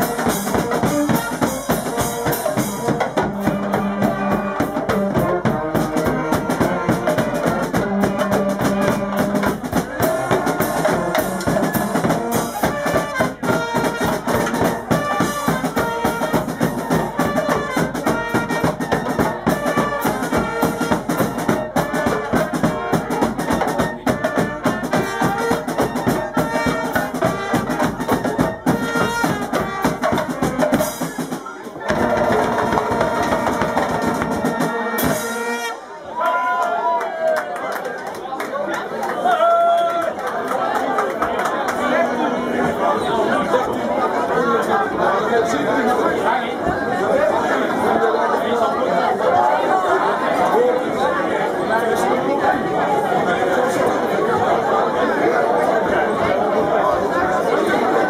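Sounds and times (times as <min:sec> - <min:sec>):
snare and bass drum beat: 0:00.0 - 0:35.8
brass horns playing tune: 0:00.0 - 0:36.1.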